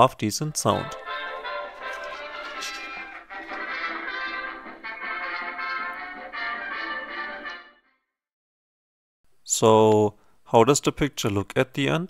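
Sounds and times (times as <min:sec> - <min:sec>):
thin music from tiny speakers: 0:00.6 - 0:07.8.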